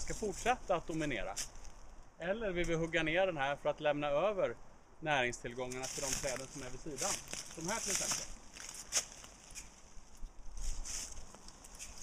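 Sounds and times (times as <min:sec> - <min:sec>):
rustling in woodland: 0:00.0 - 0:03.2, 0:05.4 - 0:12.0.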